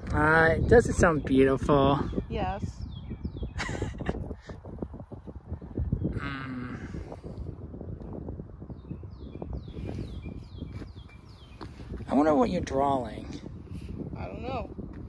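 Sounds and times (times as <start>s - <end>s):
birds singing: 0.0s - 14.8s.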